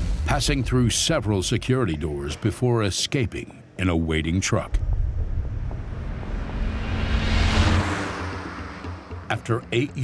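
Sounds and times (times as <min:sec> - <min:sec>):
low rumbling drone: 0:04.6 - 0:09.3.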